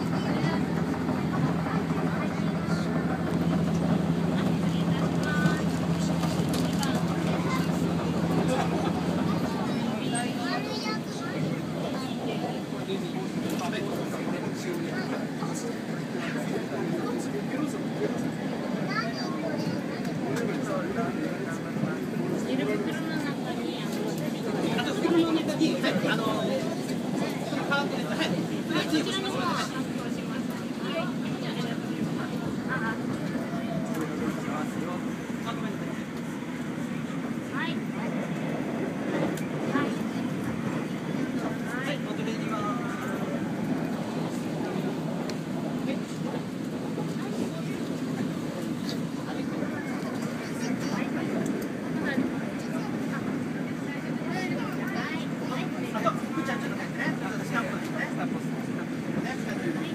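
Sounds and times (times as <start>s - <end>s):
passengers chattering: 0.0s - 59.9s
train carriage running noise: 0.0s - 59.9s.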